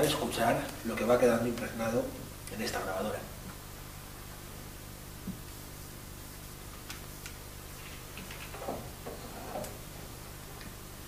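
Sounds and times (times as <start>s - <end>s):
steady low hum and hiss: 0.0s - 11.0s.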